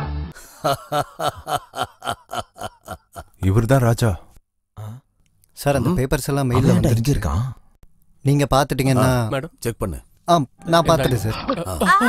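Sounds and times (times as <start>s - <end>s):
man laughing heartily: 0.4s - 3.4s, 11.6s - 12.0s.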